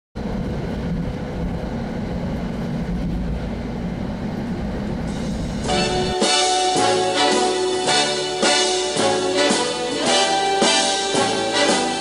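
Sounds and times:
moving train rumble: 0.2 - 12.0
orchestral music with brass: 5.7 - 12.0.

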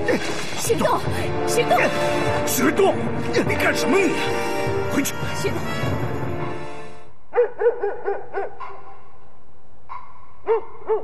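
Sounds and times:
dog barking: 7.3 - 9.1, 9.9 - 11.0.

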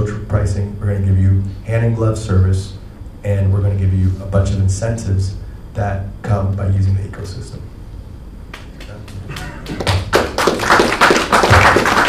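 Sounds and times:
audience applauding: 8.5 - 12.0.

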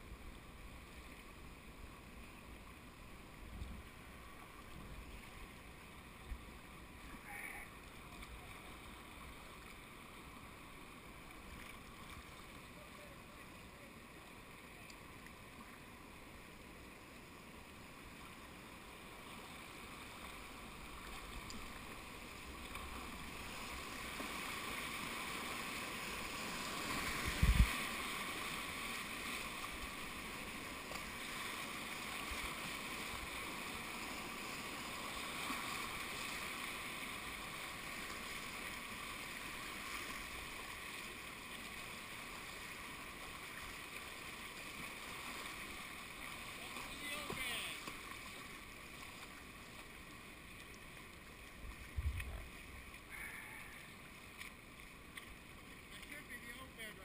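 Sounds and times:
whitewater rapids rushing: 22.0 - 49.3.

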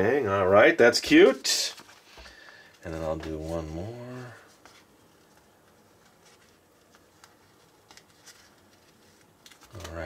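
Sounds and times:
sticker peeling clicks and rustles: 6.2 - 10.0.

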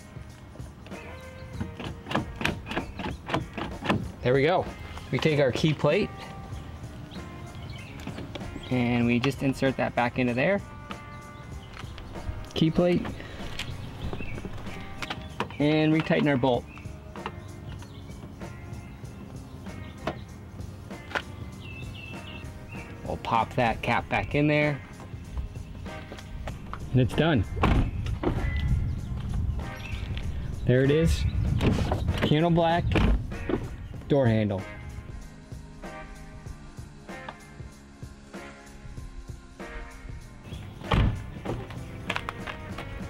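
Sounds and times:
faint background music: 0.0 - 43.0
bird chirp: 0.9 - 4.9, 5.6 - 9.8, 10.6 - 32.6, 40.4 - 41.5.

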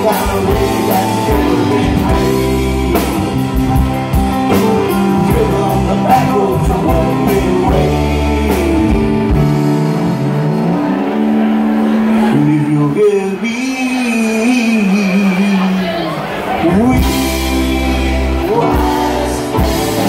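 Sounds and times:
live rock band playing: 0.0 - 20.0.

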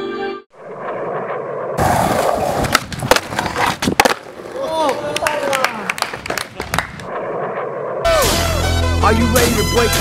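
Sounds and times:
skateboard wheels rolling on concrete: 0.5 - 8.0
skateboard pops and clacks: 2.1 - 7.1.

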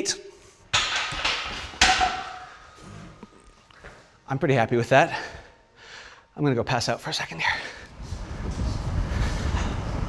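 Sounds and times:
floor fan wind buffeting mic: 7.6 - 10.0.

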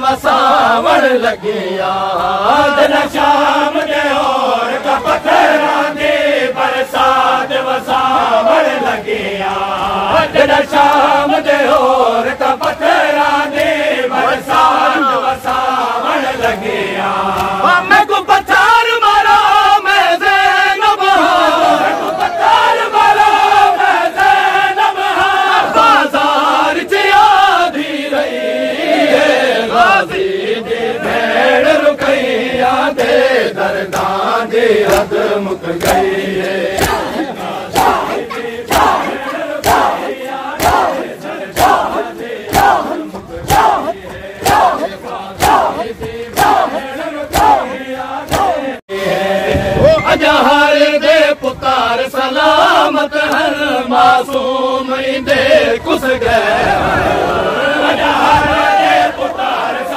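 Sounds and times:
men chanting together: 0.0 - 59.9
hands slapping chests: 17.3 - 17.6, 34.8 - 35.2, 35.8 - 47.7, 48.3 - 48.6.

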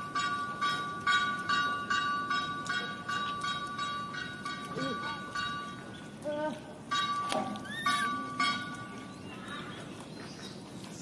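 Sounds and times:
macaque calls: 7.6 - 8.2.

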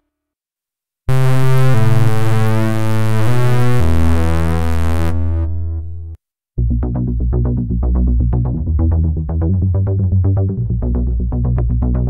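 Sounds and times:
sustained synthesizer notes: 1.1 - 12.0.

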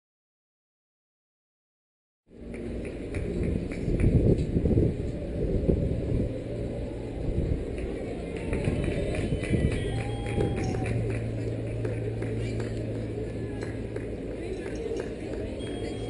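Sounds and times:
low rumble: 2.3 - 16.0.

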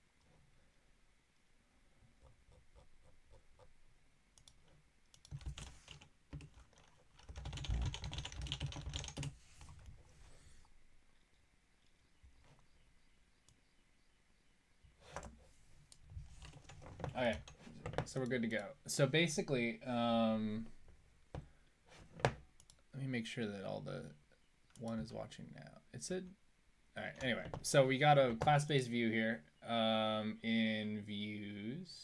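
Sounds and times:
computer keyboard typing: 4.4 - 9.9, 16.4 - 18.0.

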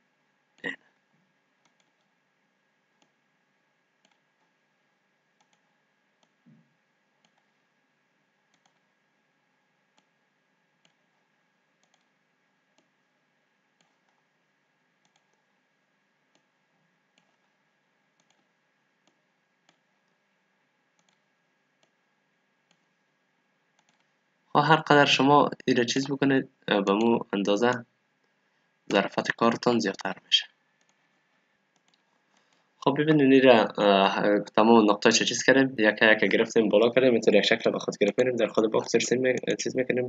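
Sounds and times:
faint computer mouse clicks: 1.6 - 2.1, 5.4 - 6.6, 8.5 - 8.9, 11.8 - 12.1, 15.0 - 15.4, 18.2 - 19.8, 21.0 - 21.2, 23.8 - 24.1, 31.8 - 32.6.

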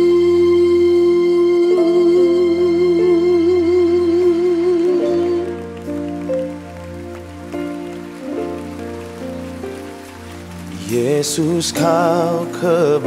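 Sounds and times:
person singing: 0.0 - 6.5, 10.6 - 13.0
slow band held chords: 0.0 - 13.0.

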